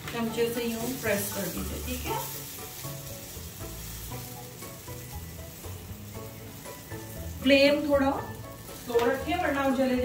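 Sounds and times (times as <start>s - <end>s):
sandwich sizzling in grill pan: 0.0s - 10.0s.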